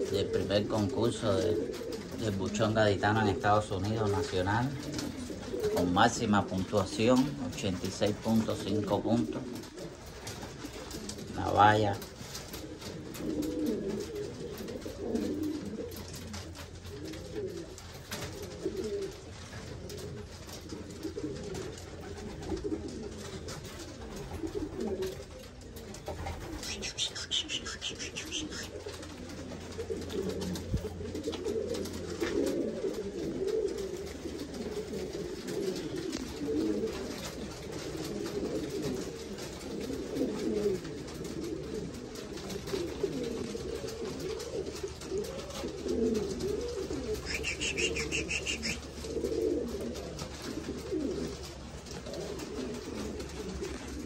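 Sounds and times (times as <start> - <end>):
pigeons cooing: 0.0 - 54.0.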